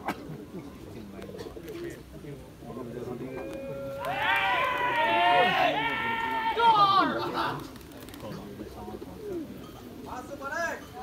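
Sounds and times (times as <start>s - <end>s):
people yelling high-pitched calls: 3.5s - 7.3s.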